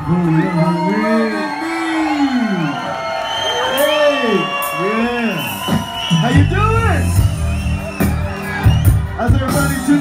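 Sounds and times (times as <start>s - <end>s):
crowd cheering and whooping: 0.0s - 10.0s.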